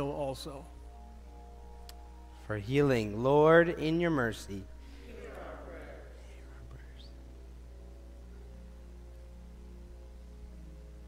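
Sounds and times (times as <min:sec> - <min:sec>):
electrical hum: 0:00.0 - 0:11.0
soft sustained chords: 0:00.0 - 0:11.0
congregation murmuring a response: 0:04.8 - 0:07.0.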